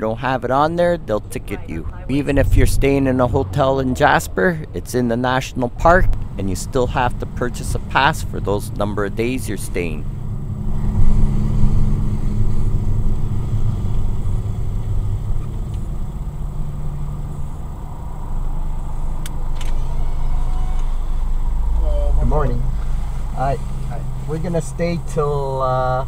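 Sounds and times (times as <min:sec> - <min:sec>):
car engine and tyre noise: 0:00.0 - 0:26.0
deep low rumble: 0:01.2 - 0:05.0, 0:05.6 - 0:18.9.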